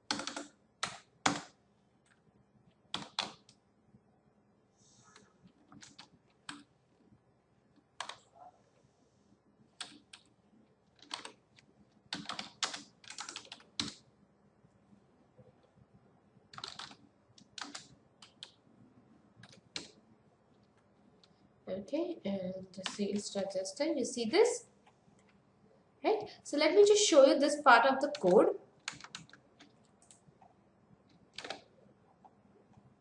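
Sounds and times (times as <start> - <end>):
keyboard keystrokes: 11.0 - 11.4, 16.6 - 18.6, 28.8 - 30.2, 31.3 - 31.7.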